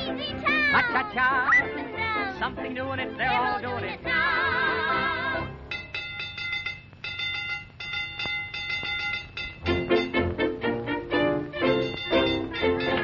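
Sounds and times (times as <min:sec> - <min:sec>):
cartoon orchestra music: 0:00.0 - 0:05.5, 0:09.6 - 0:13.0
high tinkling notes: 0:05.7 - 0:13.0.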